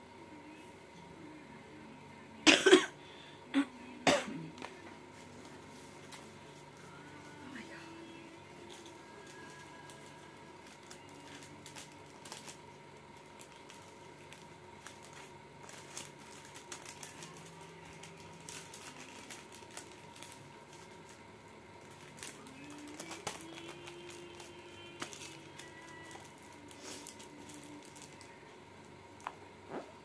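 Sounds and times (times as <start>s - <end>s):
faint music: 0.0s - 30.0s.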